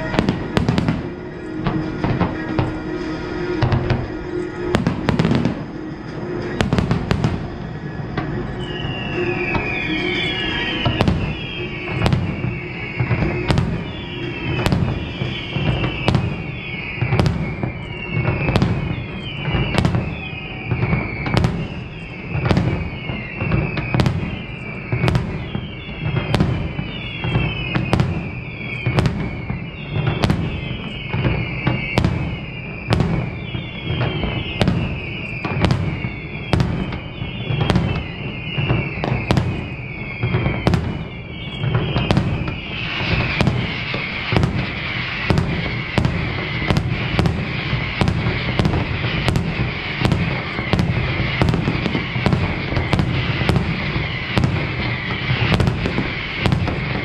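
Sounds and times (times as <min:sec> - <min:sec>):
fireworks bangs: 0:00.0 - 0:57.0
fireworks whistles and crackles: 0:00.0 - 0:57.0.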